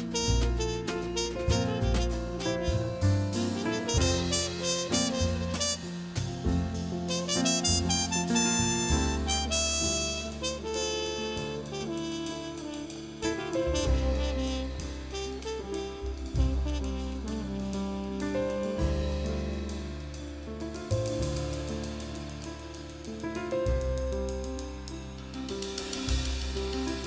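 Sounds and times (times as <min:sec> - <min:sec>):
trumpet melody: 0:00.0 - 0:19.9
drums with cymbals: 0:00.0 - 0:27.0
piano chords: 0:00.0 - 0:27.0
walking double bass: 0:00.0 - 0:27.0.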